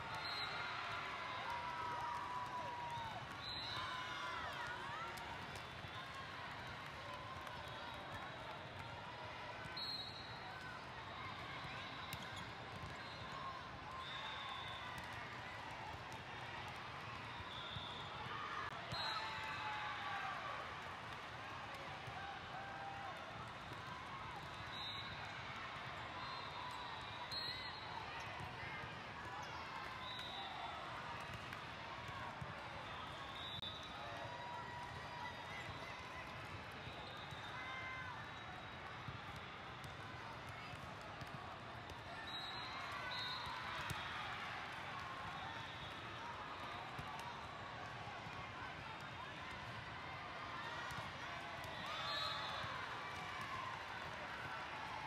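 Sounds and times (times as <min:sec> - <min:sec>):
babble of voices in a hall: 0:01.2 - 0:55.0.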